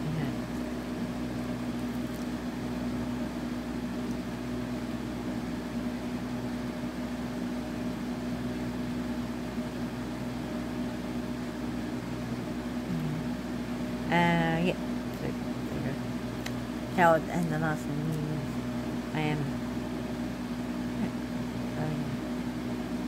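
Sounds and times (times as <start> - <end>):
machine hum: 0.0 - 23.0.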